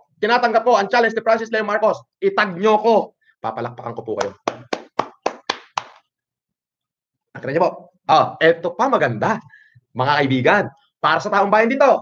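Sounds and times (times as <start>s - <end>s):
person clapping hands: 4.2s - 6.0s.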